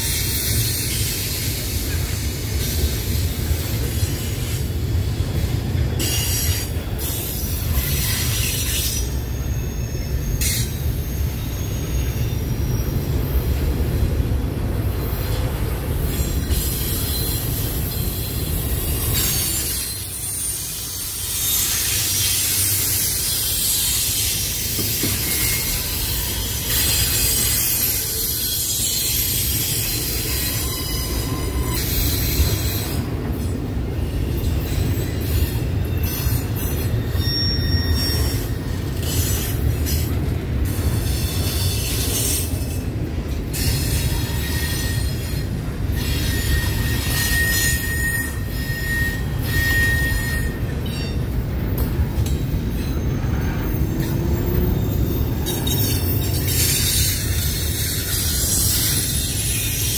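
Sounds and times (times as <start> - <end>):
freight train wheels rumbling: 0.0 - 59.9
high wheel squeals: 0.0 - 59.9.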